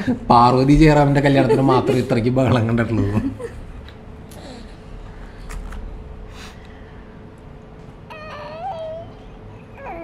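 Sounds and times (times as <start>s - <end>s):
child whining cry: 8.1s - 10.0s.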